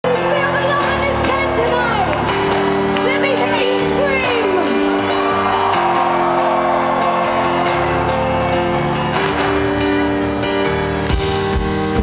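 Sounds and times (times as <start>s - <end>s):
live band keyboard chords: 0.0s - 12.0s
audience whooping and shouting: 1.0s - 10.5s.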